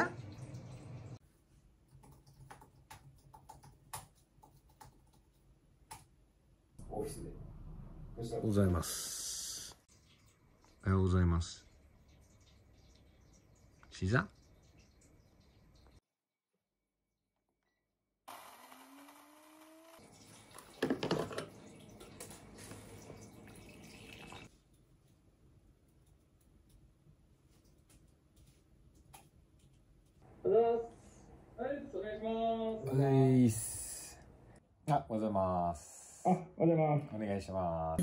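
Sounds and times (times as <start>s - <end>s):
typing on computer keyboard: 1.9s - 6.0s.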